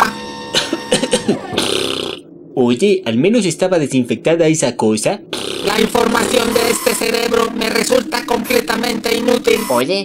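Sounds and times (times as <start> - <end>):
sputtering with falling pitch: 5.2 - 9.8.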